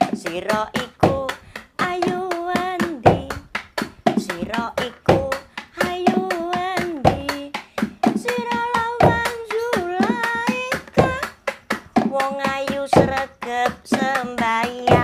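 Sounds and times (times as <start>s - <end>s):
woman singing: 0.0s - 11.4s, 12.0s - 15.0s
hand drum beating: 0.0s - 15.0s.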